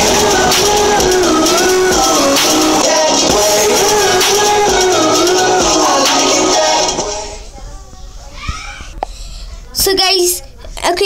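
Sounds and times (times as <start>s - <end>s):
music: 0.0s - 7.4s
faint child's voice: 7.5s - 9.8s.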